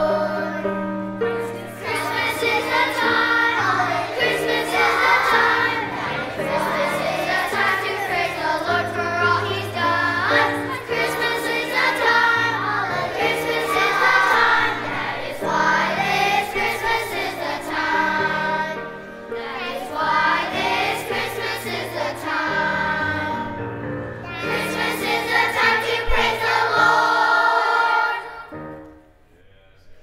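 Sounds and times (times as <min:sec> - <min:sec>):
children's choir singing: 0:00.0 - 0:28.9.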